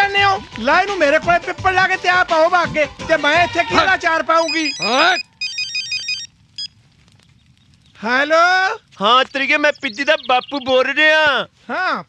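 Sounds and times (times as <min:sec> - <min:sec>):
electronic telephone ringtone beeps: 0:04.4 - 0:06.7.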